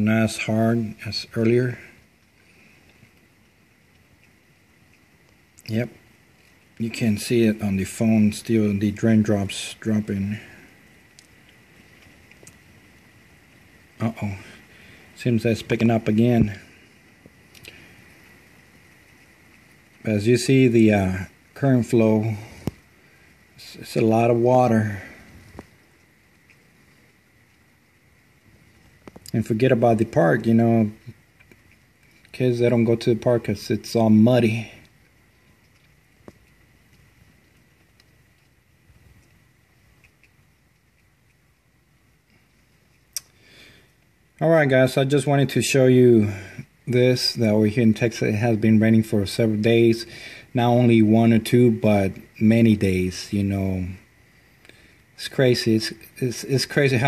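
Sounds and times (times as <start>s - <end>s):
faint steady rain: 0.0s - 57.0s.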